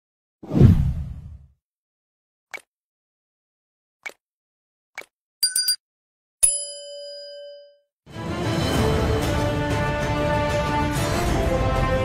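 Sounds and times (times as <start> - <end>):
notification bell ding: 5.4 - 5.8, 6.4 - 7.8.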